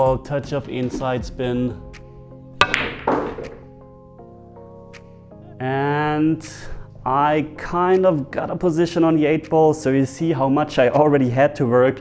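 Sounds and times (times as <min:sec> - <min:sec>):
quiet background music: 0:00.0 - 0:12.0
balls rolling and pocketing: 0:00.7 - 0:01.3, 0:02.6 - 0:03.8
balls clacking: 0:00.8 - 0:01.2, 0:02.6 - 0:03.8
cue tip striking ball: 0:02.6 - 0:03.8.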